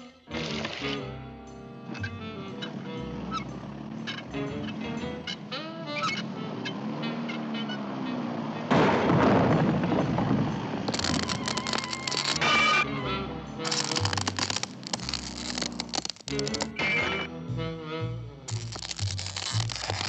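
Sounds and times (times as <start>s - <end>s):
cartoon underscore music: 0.0s - 8.8s, 11.0s - 19.8s
loud crash: 8.7s - 11.5s
cracking and crumbling: 8.7s - 12.8s, 13.6s - 17.0s, 18.5s - 20.0s.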